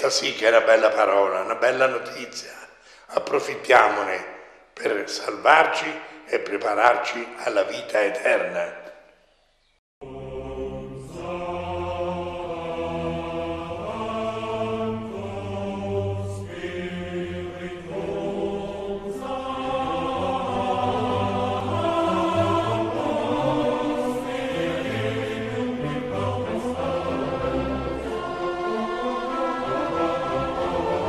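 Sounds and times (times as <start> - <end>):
choir singing long held notes: 10.0 - 31.0.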